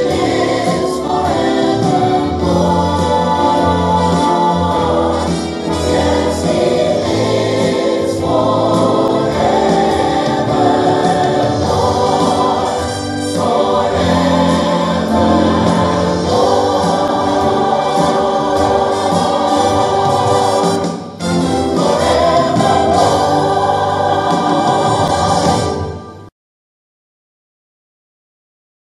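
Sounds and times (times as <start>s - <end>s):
choir singing gospel hymn: 0.0s - 26.3s.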